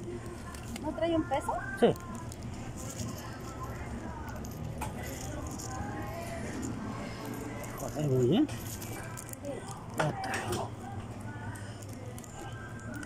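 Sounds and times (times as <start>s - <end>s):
faint background voices: 0.0s - 13.0s
steady low hum: 0.0s - 13.0s.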